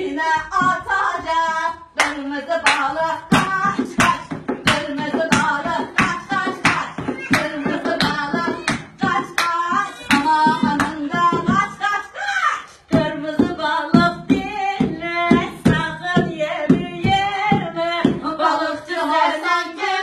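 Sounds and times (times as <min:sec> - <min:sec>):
women singing: 0:00.0 - 0:20.0
hands clapping in rhythm: 0:00.5 - 0:11.9.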